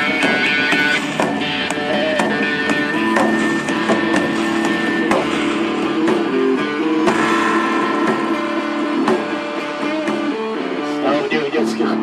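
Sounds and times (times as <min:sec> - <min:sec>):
folk-rock band playing: 0:00.0 - 0:12.0
sharp drum hit: 0:03.2 - 0:10.8.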